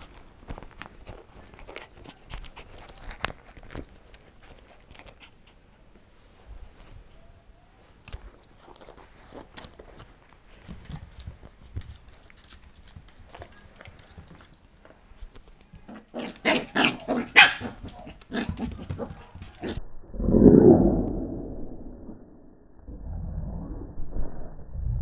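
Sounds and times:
puppy yapping: 0:16.2 - 0:19.8.

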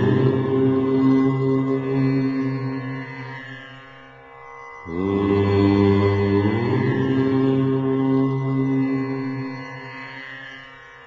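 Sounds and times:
chanted mantra: 0:00.0 - 0:03.7, 0:04.8 - 0:10.4.

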